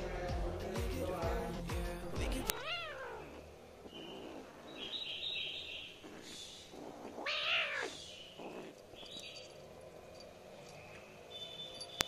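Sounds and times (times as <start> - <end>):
kitten meowing: 2.4 - 3.4, 7.1 - 8.0.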